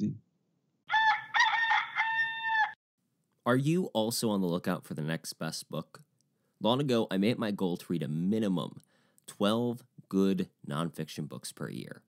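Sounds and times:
rooster crowing: 0:00.9 - 0:02.8.

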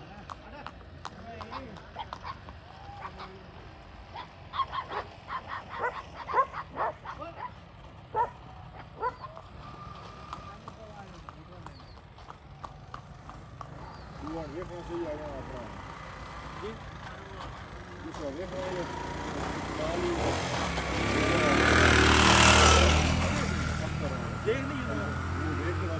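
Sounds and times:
dogs barking: 0:01.4 - 0:03.4, 0:04.1 - 0:09.5.

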